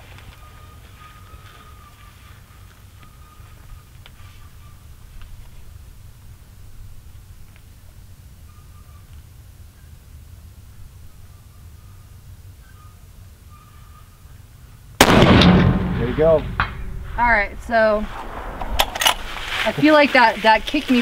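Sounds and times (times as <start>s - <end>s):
low steady rumble: 14.6s - 21.0s
rifle shot: 15.0s - 19.4s.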